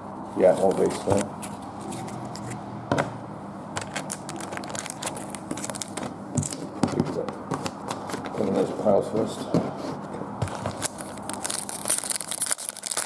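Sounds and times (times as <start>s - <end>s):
card wrappers rustling and crinkling: 0.6s - 2.6s, 3.8s - 8.6s, 10.4s - 13.0s.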